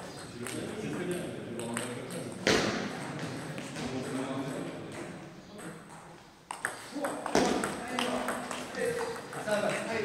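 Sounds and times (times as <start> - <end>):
table tennis ball clicking: 6.5 - 9.5.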